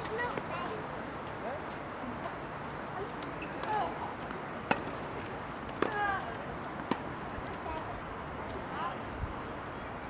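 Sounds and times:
tennis racket hitting ball: 4.7s - 6.0s, 6.7s - 7.2s.

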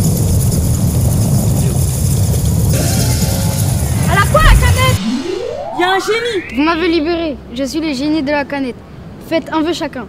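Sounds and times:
low rumble: 3.2s - 7.3s.

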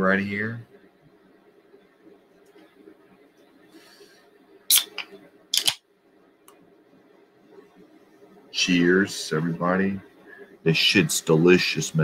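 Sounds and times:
faint room hum: 0.0s - 12.0s.

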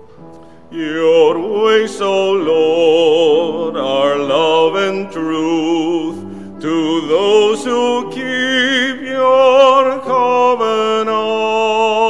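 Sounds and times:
piano chords: 0.0s - 12.0s
person singing with vibrato: 0.7s - 12.0s.

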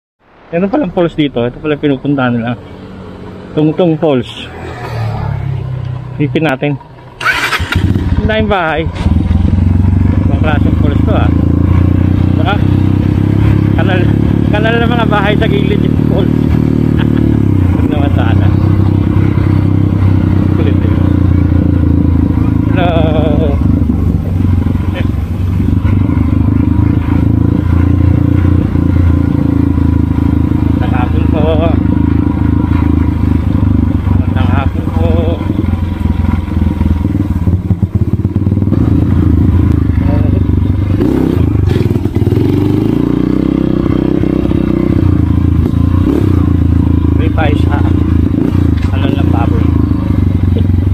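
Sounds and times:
motorcycle engine running: 1.6s - 50.9s.

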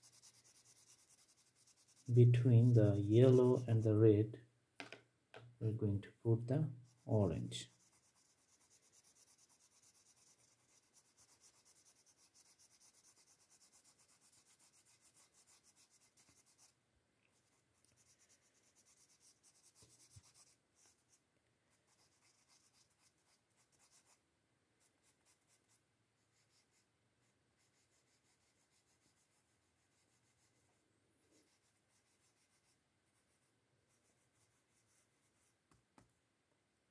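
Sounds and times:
crayon scratching on paper: 0.0s - 4.0s, 6.8s - 24.2s, 24.8s - 26.8s, 27.6s - 35.6s.

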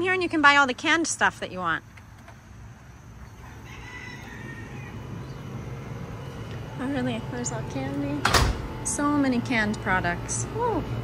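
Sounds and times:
low steady hum: 0.0s - 11.0s
rooster crowing faintly: 3.3s - 5.1s.

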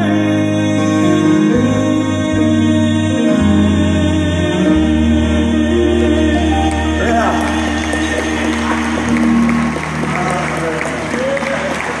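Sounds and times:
piano and vocal chord: 0.0s - 12.0s
audience applauding and cheering: 6.6s - 12.0s.

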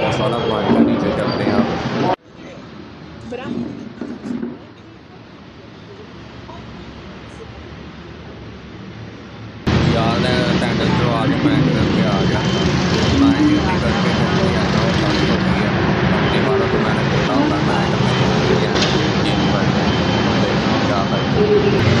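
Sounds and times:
man talking: 0.0s - 2.2s, 9.7s - 22.0s
loud background rumble and hum: 0.0s - 22.0s.

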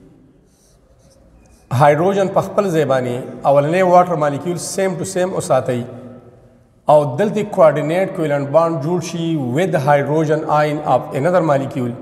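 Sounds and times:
marker pen on whiteboard: 0.4s - 1.8s.

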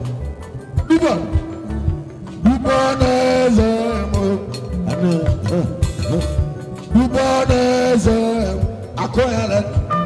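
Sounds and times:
live band music: 0.0s - 10.0s
low drum beat: 0.7s - 10.0s.

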